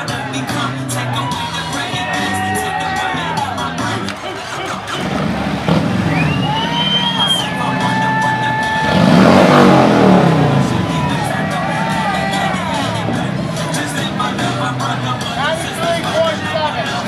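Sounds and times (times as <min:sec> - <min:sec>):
background music with singing: 0:00.0 - 0:17.0
motorcycle engine starting and revving: 0:04.9 - 0:15.2.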